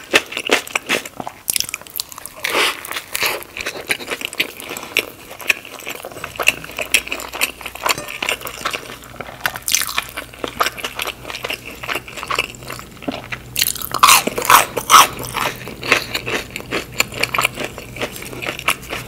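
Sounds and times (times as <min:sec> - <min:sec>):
wet chewing: 0:00.0 - 0:19.0.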